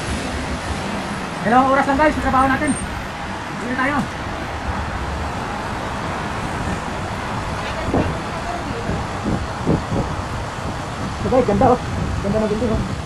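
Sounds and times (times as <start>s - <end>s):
heavy traffic rumble: 0.0s - 13.0s.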